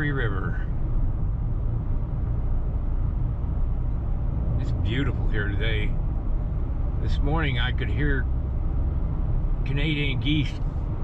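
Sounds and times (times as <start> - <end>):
car interior road and engine noise: 0.0 - 11.0.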